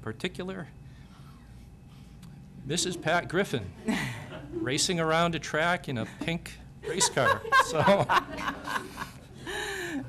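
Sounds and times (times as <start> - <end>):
person laughing: 6.9 - 9.2.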